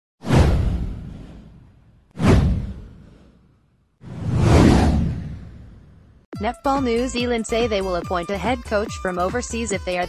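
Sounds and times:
deep boom: 0.2s - 3.3s, 4.0s - 6.2s
whoosh sound effect: 0.2s - 6.0s.

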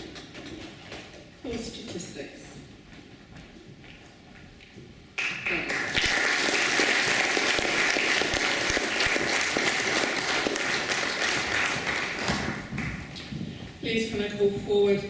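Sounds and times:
audience applauding: 5.2s - 13.1s.

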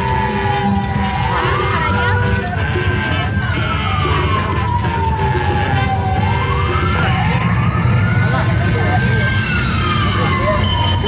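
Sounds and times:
crowd chatter: 0.0s - 11.0s
emergency vehicle siren wailing: 0.0s - 11.0s.

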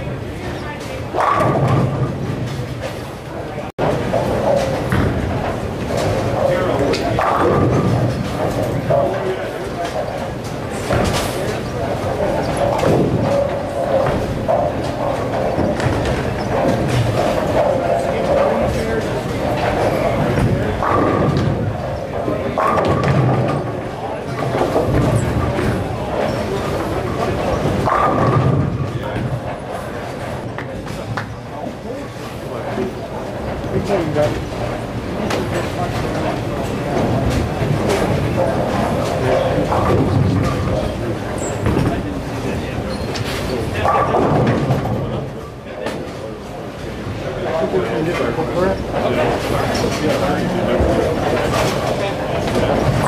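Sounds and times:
background chatter: 0.0s - 53.0s
bowling balls rolling and thudding: 0.0s - 53.0s
bowling pins crashing: 12.5s - 30.4s.

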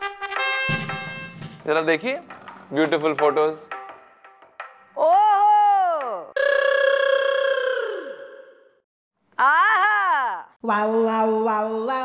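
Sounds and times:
comic cries of shock: 5.0s - 8.7s, 9.4s - 10.5s.

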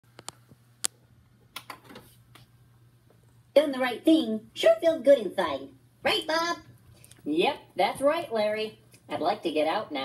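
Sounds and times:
faint low hum: 0.1s - 10.0s.

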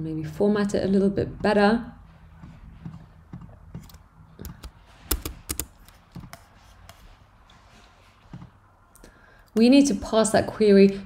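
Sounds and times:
keyboard keystrokes: 3.8s - 6.4s.

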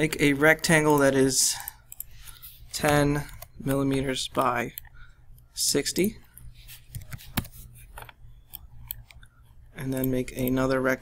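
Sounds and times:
keyboard and mouse clicks: 0.5s - 5.5s, 6.3s - 10.8s.

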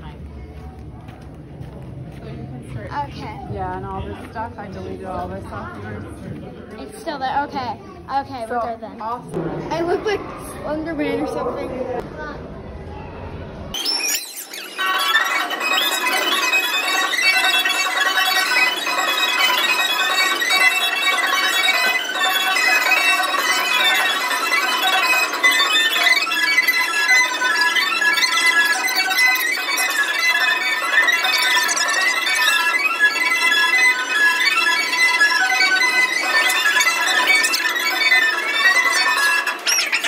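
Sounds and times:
carousel band organ music: 13.8s - 40.0s.

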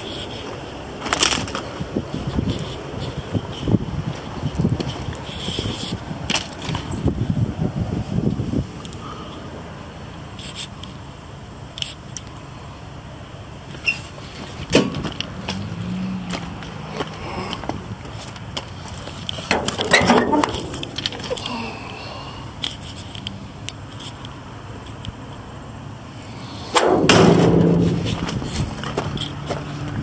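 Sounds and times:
knocks and rustles: 14.4s - 15.7s, 16.3s - 21.5s, 26.8s - 29.8s.

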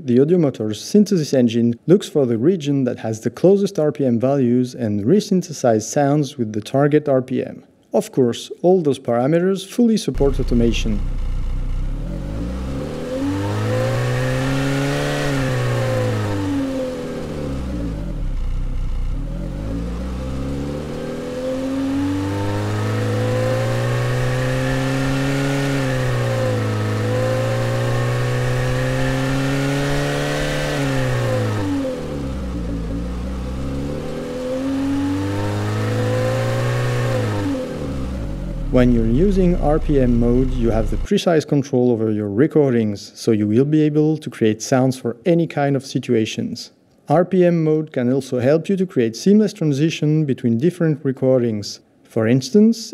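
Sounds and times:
car engine revving: 10.2s - 41.1s.

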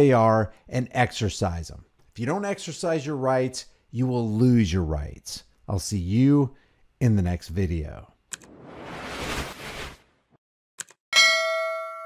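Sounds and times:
bright bell ding: 11.1s - 12.0s.

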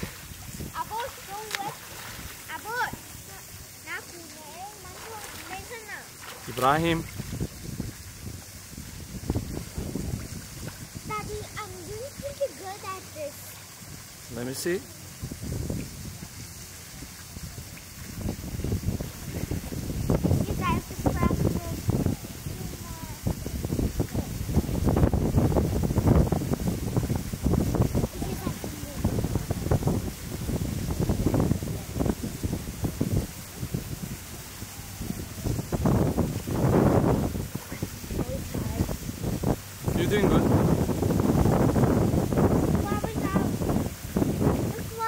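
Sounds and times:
water splashing in a pool: 0.0s - 45.0s
wind rumbling on microphone: 0.0s - 45.0s.

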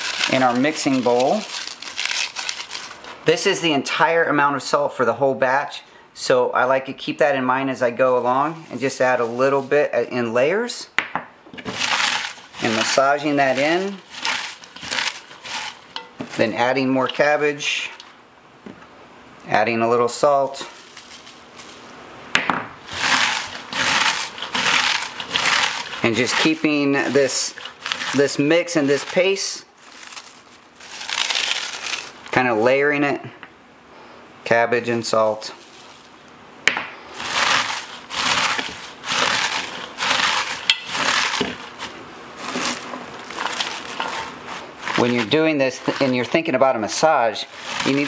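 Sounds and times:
cabbage crunching under hands: 0.0s - 3.3s, 11.6s - 18.0s, 20.8s - 21.9s, 22.8s - 32.4s, 37.1s - 46.4s, 47.3s - 48.0s.

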